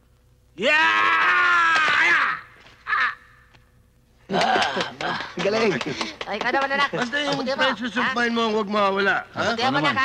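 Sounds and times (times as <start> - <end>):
man yelling: 0.6 - 3.2.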